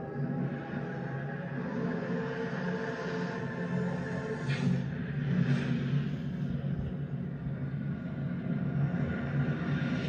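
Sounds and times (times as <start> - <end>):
ominous low droning music: 0.0 - 10.0.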